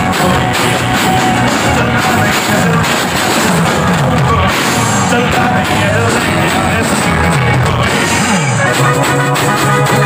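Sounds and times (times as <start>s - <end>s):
live band through pa: 0.0s - 10.0s.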